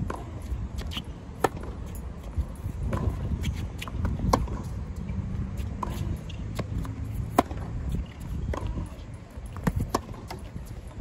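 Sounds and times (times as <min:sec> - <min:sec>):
tennis ball struck by racket: 0:00.0 - 0:01.8, 0:02.8 - 0:04.7, 0:05.6 - 0:09.0, 0:09.6 - 0:10.5.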